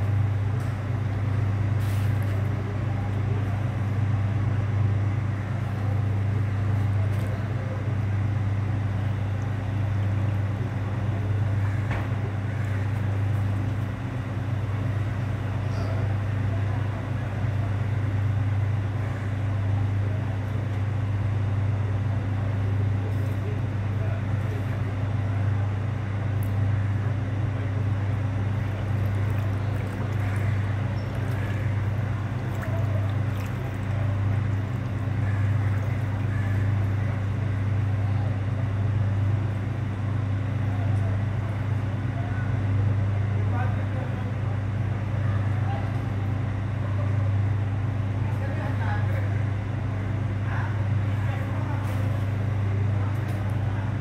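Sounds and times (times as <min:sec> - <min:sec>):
engine idling: 0:00.0 - 0:40.1.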